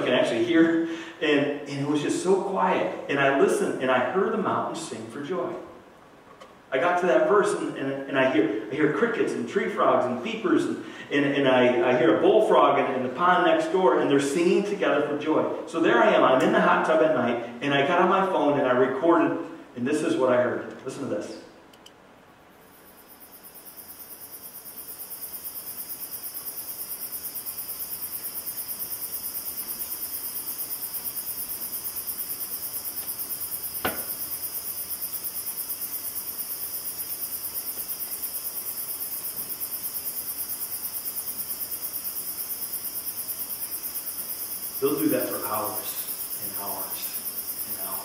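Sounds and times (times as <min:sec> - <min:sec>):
crickets and tree frogs trilling: 0:22.5 - 0:48.0
brief knock: 0:33.8 - 0:34.2.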